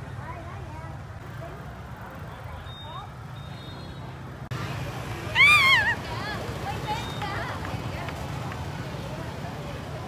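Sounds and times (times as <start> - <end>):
traffic and motorbikes rumble: 0.0 - 10.0.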